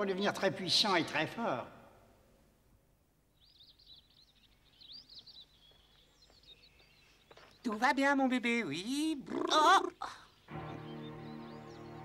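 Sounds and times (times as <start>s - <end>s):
faint birdsong chirping: 0.0s - 12.0s.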